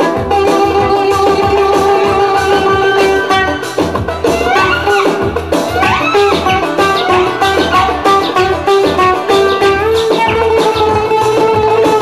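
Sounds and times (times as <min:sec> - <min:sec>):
low bass accompaniment: 0:00.0 - 0:12.0
oud plucked notes: 0:00.0 - 0:12.0.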